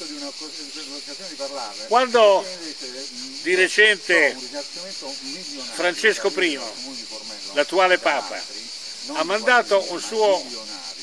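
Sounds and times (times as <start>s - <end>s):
cicadas buzzing: 0.0s - 11.0s.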